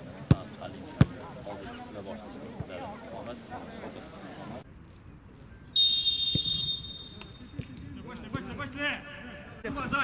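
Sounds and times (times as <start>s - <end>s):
referee's whistle blast: 5.8s - 7.6s.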